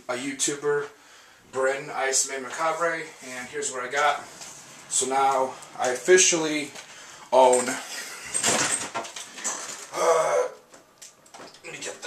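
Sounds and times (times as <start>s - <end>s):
rustling and handling noise: 2.3s - 10.0s.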